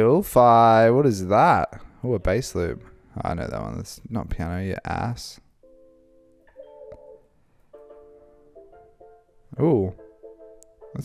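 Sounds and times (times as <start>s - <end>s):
faint sustained music chords: 0.0s - 4.0s, 4.9s - 11.0s.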